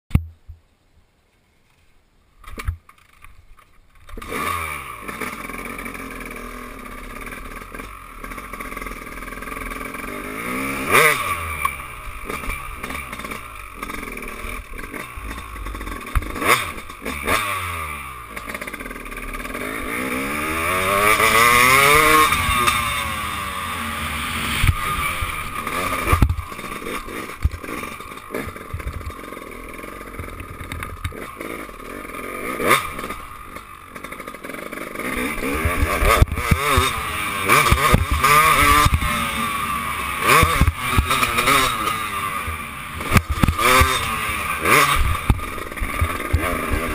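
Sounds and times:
dirt bike engine revving: 4.0s - 46.9s.

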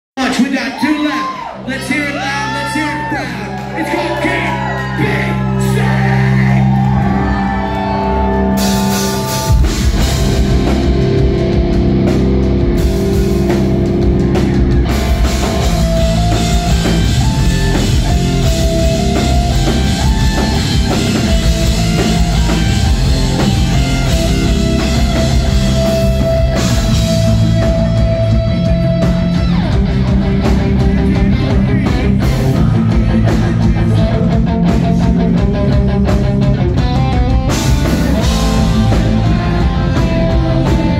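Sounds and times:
drums: 0.1s - 40.9s
distorted guitars: 0.2s - 40.9s
guitar and bass chords ringing: 1.3s - 40.9s
person singing: 28.3s - 35.7s.

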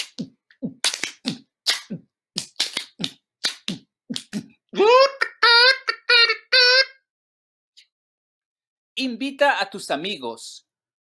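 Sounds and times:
person beatboxing: 0.0s - 5.2s.

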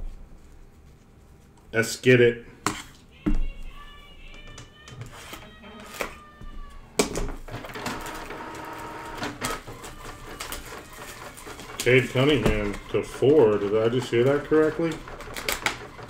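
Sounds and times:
shrink wrap crinkling and tearing: 9.7s - 14.4s.

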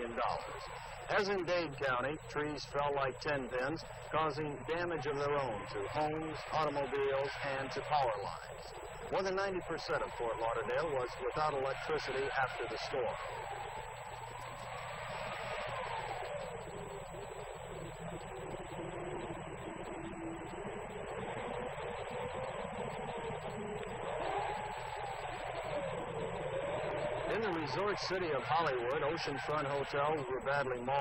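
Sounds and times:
strong wind rushing and howling: 0.0s - 31.0s.

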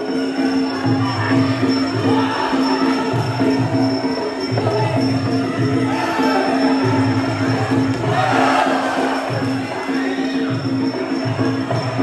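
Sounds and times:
live fight music with drums: 0.0s - 12.0s
crowd cheering: 5.6s - 12.0s.

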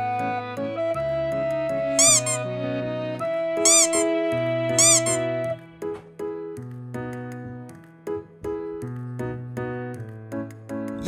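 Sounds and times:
cheerful children's music: 0.0s - 11.0s
loud rising falling squeaks: 2.0s - 2.4s, 3.6s - 4.2s, 4.8s - 5.3s.

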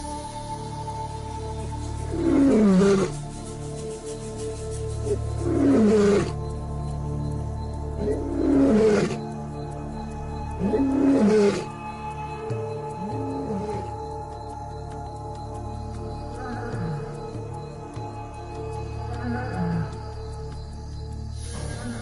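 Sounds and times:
background music: 0.0s - 22.0s
lion roaring: 2.1s - 3.2s, 5.1s - 6.4s, 8.0s - 9.2s, 10.6s - 11.7s.

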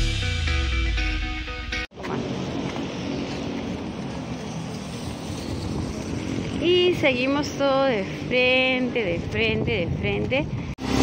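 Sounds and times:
street traffic noise: 1.9s - 11.0s.

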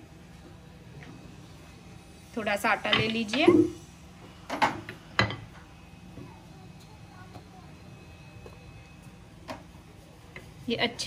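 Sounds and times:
low steady hum: 0.0s - 4.4s.

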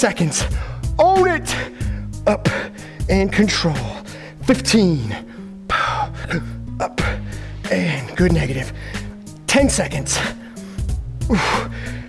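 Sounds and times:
workout music with bass line: 0.0s - 12.0s
man gasping: 0.5s - 3.1s, 4.0s - 4.4s, 5.1s - 8.1s, 8.7s - 9.2s, 10.2s - 12.0s.

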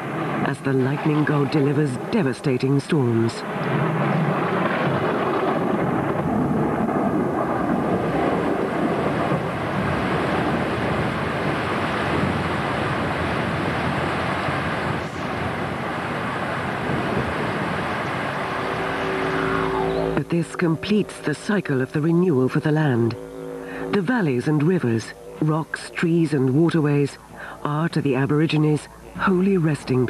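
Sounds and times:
thunder rolling and rumbling: 3.4s - 20.2s
low musical drone: 17.8s - 30.0s.

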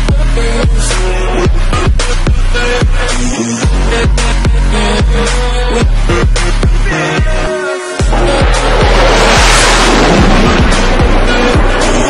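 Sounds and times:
jet aircraft roar: 8.1s - 12.0s.

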